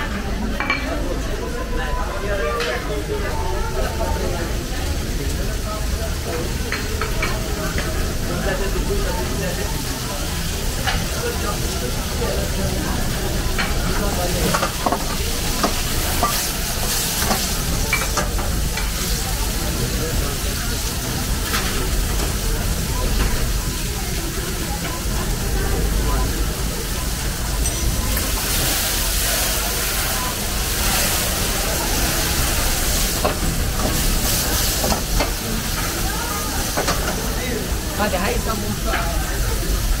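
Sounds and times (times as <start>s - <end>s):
gas burner rumble: 0.0s - 40.0s
vegetables sizzling in oil: 2.0s - 40.0s.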